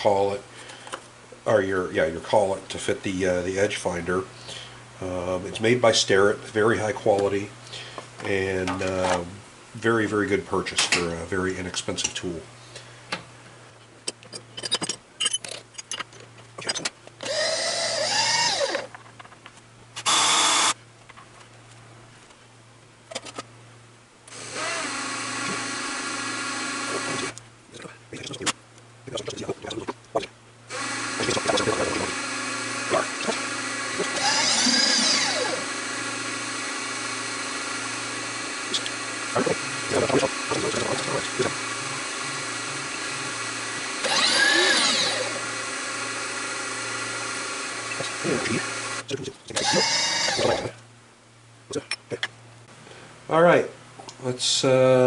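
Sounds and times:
milling machine spindle whine: 17.2s - 18.9s, 20.1s - 20.8s, 24.3s - 27.4s, 30.7s - 49.0s, 49.6s - 50.8s.

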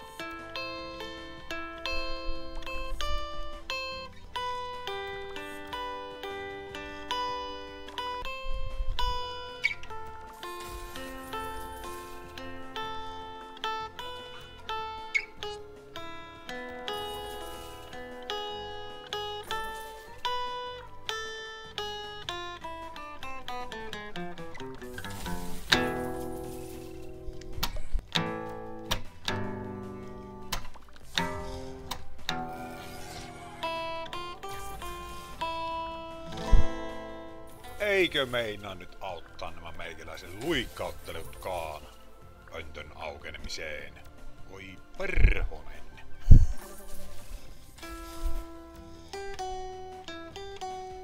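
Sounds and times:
plucked-string game music: 0.0s - 51.0s.

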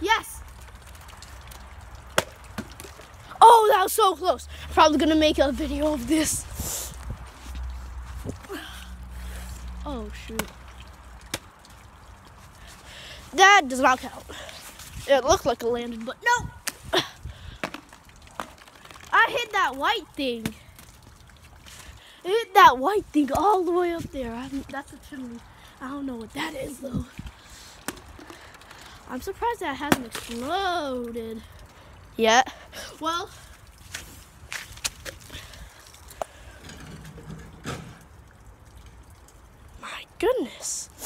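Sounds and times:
wind rumble on microphone: 6.1s - 8.6s.

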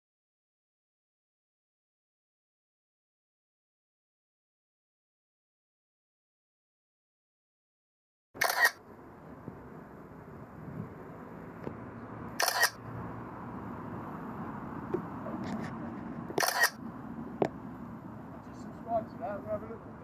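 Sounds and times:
camera shutter clicks: 8.4s - 8.8s, 12.4s - 12.8s, 16.4s - 16.8s.

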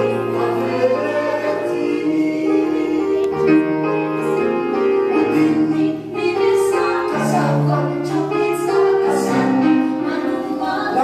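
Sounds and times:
voices singing a theatrical song: 0.0s - 3.8s, 5.1s - 11.0s
musical accompaniment: 0.0s - 11.0s.

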